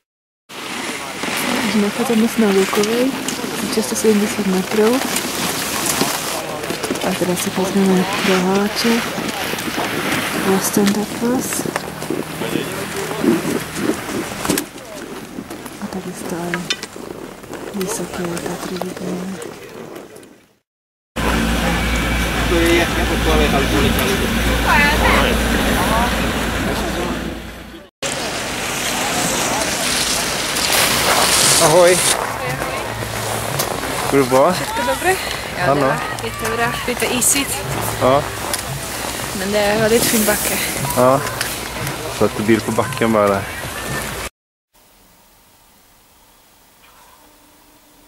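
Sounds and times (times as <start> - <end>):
faint voices: 0.6 - 16.8, 21.2 - 44.3
wind rumbling on microphone: 0.6 - 20.5
people talking: 0.8 - 15.1, 15.8 - 16.8, 17.7 - 19.8, 21.2 - 44.3.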